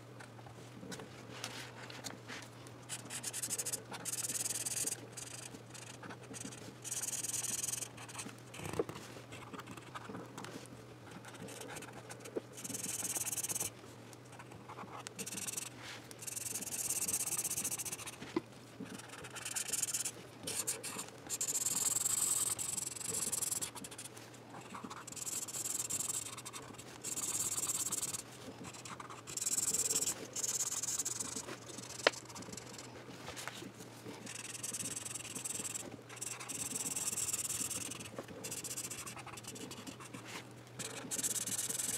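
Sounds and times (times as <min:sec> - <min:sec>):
felt-tip pen scratching on paper: 0:02.9 - 0:10.3, 0:11.1 - 0:13.7, 0:14.3 - 0:41.9.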